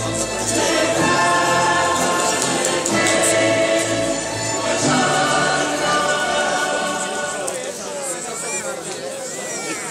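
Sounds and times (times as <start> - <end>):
choir singing slow long notes: 0.0 - 7.6.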